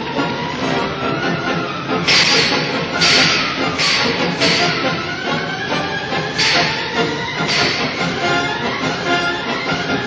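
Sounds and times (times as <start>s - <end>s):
dramatic orchestral music: 0.0s - 10.0s
loud rushing bursts: 2.0s - 10.0s.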